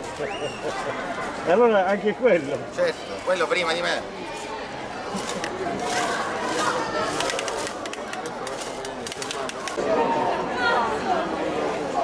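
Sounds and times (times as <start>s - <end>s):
voices of onlookers: 0.0s - 12.0s.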